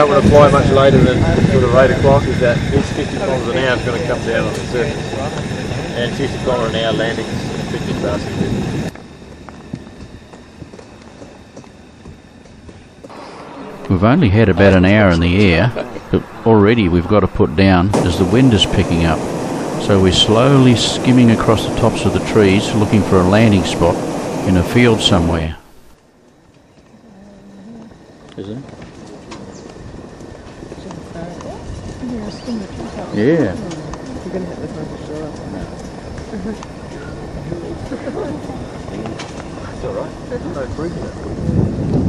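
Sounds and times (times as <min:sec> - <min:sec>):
steady low rumble: 0:00.0 - 0:42.0
low steady hiss: 0:13.0 - 0:41.3
birds chirping: 0:26.5 - 0:41.3.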